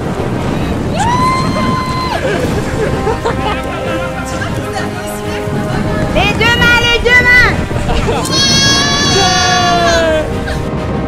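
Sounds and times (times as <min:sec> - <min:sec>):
wind rush on microphone: 0:00.0 - 0:11.0
person screaming: 0:08.3 - 0:10.3.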